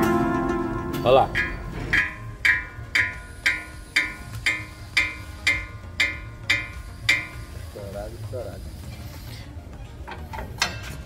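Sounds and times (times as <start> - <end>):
plucked string music: 0.0 - 7.4.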